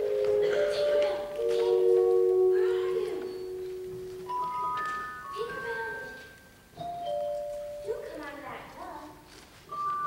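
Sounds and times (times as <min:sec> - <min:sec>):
person speaking: 0:00.0 - 0:06.4.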